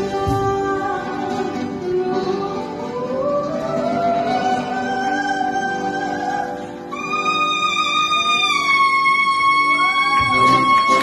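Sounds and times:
woman singing high note: 0:00.0 - 0:11.0.

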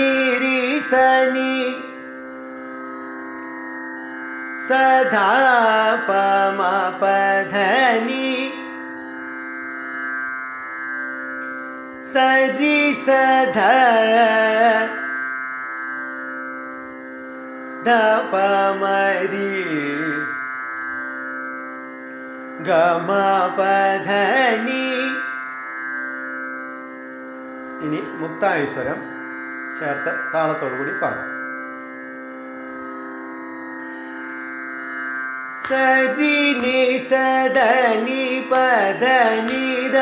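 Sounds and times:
tanpura drone: 0:00.0 - 0:40.0.

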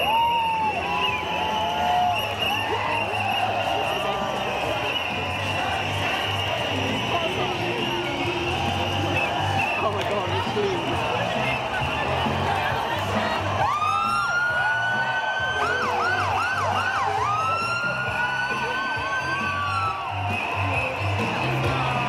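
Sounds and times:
crowd noise: 0:00.0 - 0:22.0
music with steady bass beat: 0:00.0 - 0:22.0.

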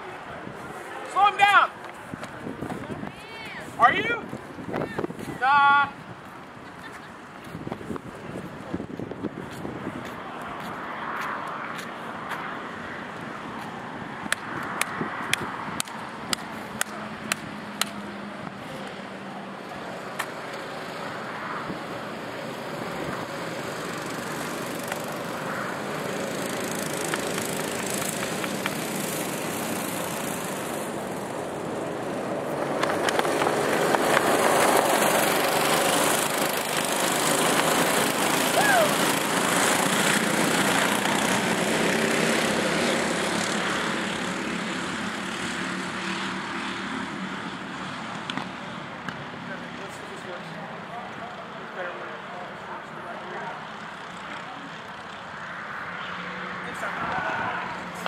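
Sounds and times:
go-kart engines running: 0:00.0 - 0:58.0.

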